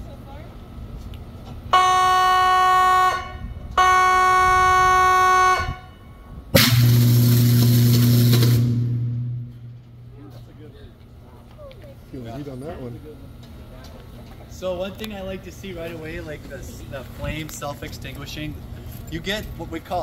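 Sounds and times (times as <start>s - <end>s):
warning horn blasts: 1.7s - 10.2s
deep electrical buzz: 3.8s - 10.7s
electrical arc flash hissing: 6.6s - 9.0s.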